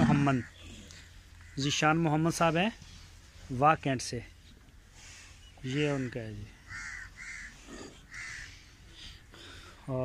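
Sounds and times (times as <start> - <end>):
bird calling: 0.0 - 2.0, 5.0 - 9.6.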